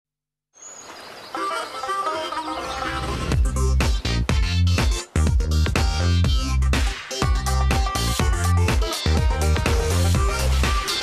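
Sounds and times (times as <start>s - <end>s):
high bird chirp: 0.6s - 3.3s.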